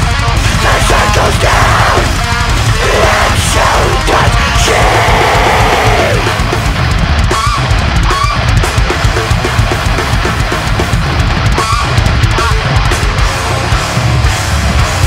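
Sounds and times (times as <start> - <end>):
distorted electric guitars: 0.0 - 15.0
rapid dense drumming: 0.0 - 15.0.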